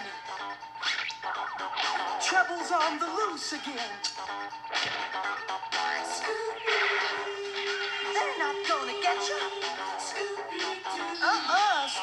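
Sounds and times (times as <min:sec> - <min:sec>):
cartoon theme song music: 0:00.0 - 0:12.0.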